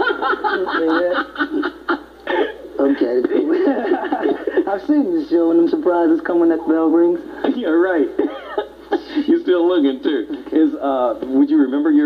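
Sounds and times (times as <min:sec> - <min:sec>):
men laughing: 0:00.0 - 0:05.0, 0:08.2 - 0:09.5.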